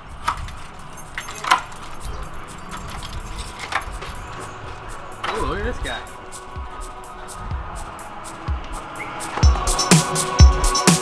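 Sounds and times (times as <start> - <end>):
keys jangling: 0.0 - 8.3.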